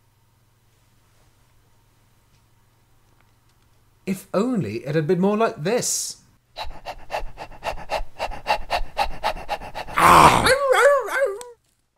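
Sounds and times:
rapid panting: 6.6 - 10.0.

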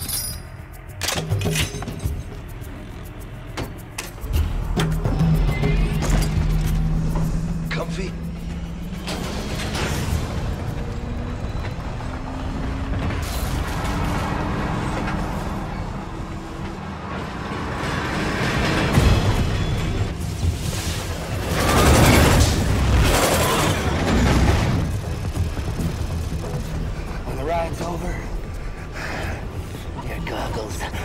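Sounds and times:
film soundtrack music: 0.0 - 31.0
heavy low rumble: 2.1 - 14.2.

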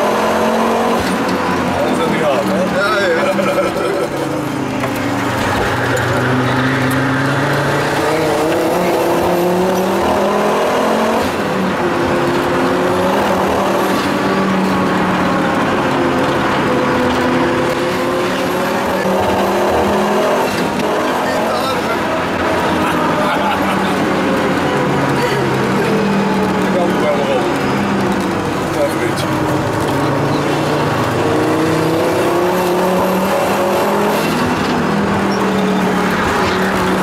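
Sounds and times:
turbocharged car engine revving: 0.0 - 37.0.

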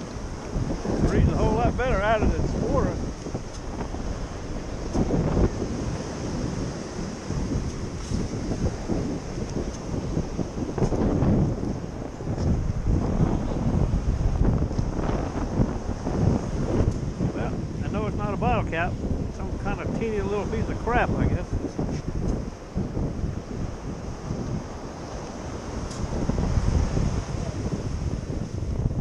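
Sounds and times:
small waves on beach: 0.0 - 29.0
wind buffeting microphone: 0.0 - 29.0.

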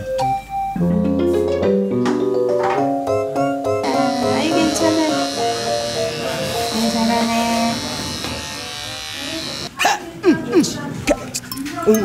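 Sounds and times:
background music: 0.0 - 9.7
electric pet clipper buzzing: 3.8 - 9.7.

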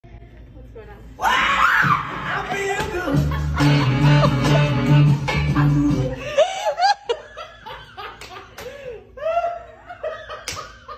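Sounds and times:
person laughing: 2.6 - 4.8, 5.5 - 10.9.

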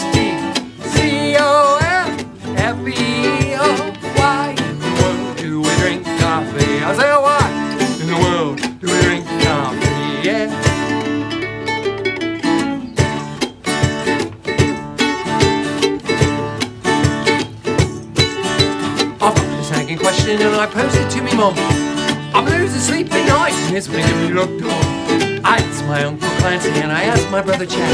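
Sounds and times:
acoustic guitar: 0.0 - 27.9
ukulele strumming: 0.0 - 27.9.

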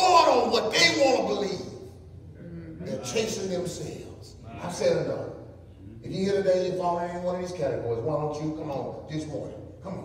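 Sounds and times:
man preaching: 0.0 - 2.0, 2.7 - 10.0.

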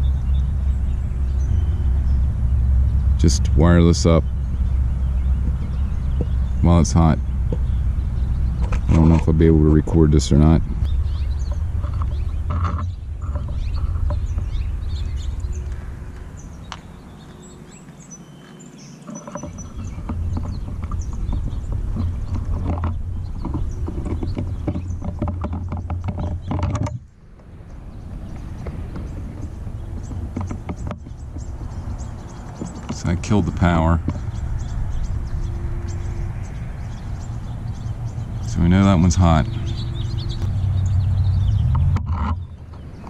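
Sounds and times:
wind buffeting microphone: 0.0 - 43.0
clicks and rustles of wires: 8.6 - 9.5, 10.2 - 14.6, 19.0 - 35.4, 41.6 - 43.0.

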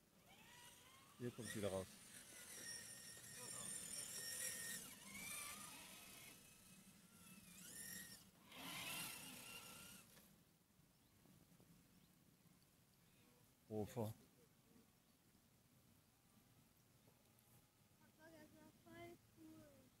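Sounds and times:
electric motor whining: 0.2 - 10.3.

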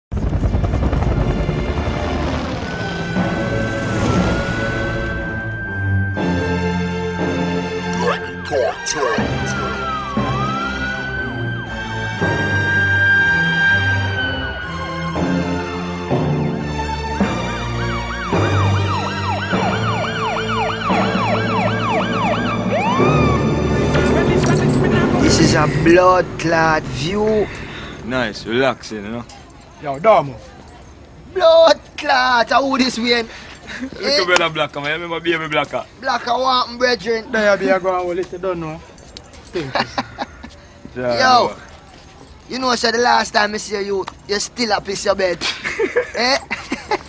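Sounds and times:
low rumbling intro effect: 0.1 - 7.0, 23.1 - 28.5
rapid yelping siren: 0.9 - 25.7
music: 1.2 - 26.0.

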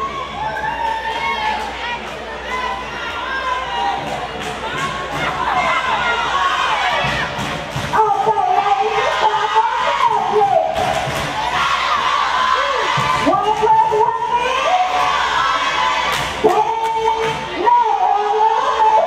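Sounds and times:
cheerleaders shouting a chant: 0.0 - 19.0
murmur of gym crowd: 0.0 - 19.0.

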